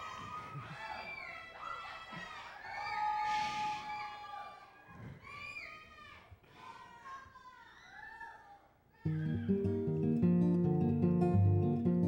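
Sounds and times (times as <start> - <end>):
audience whooping and cheering: 0.0 - 5.6, 9.1 - 9.9.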